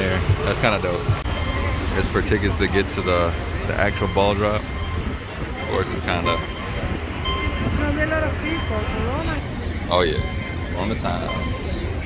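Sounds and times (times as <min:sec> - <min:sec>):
low street rumble: 0:00.0 - 0:12.0
voices of people passing: 0:00.0 - 0:12.0.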